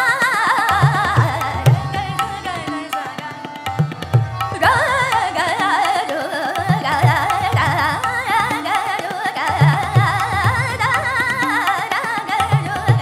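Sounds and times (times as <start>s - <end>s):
harmonium: 0.0s - 13.0s
tabla strokes: 0.0s - 13.0s
woman singing ornamented phrases: 4.6s - 13.0s.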